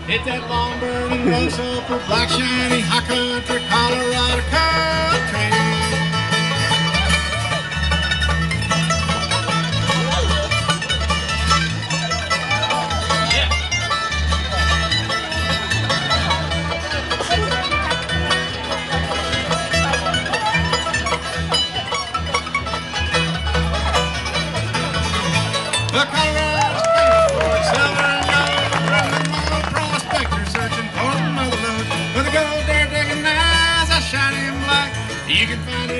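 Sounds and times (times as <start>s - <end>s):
acoustic guitar strumming: 0.0s - 35.9s
banjo picking: 0.0s - 35.9s
upright bass: 0.0s - 35.9s.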